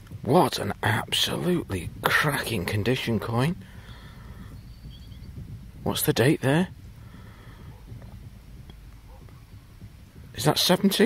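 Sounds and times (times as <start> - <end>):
steady low rumble: 0.0 - 11.0
man's voice: 0.2 - 3.6, 5.8 - 6.7, 10.4 - 11.0
faint high chirps: 4.4 - 5.5.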